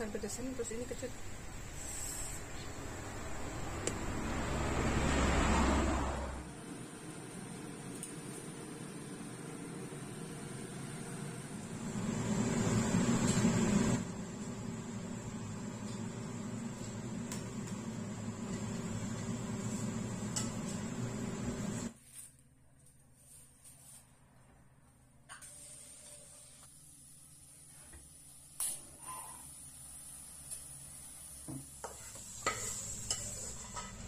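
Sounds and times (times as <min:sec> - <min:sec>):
extractor fan humming: 0:02.4 - 0:21.9.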